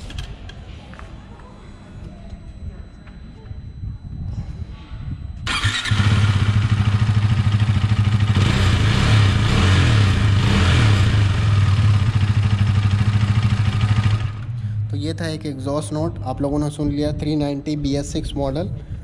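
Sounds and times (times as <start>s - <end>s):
motorcycle engine running: 5.4s - 14.9s.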